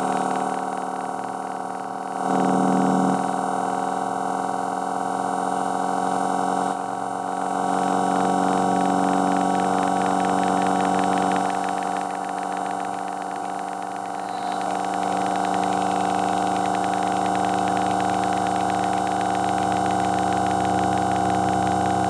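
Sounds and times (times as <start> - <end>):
buzzy low test tone drone: 7.6 - 22.0.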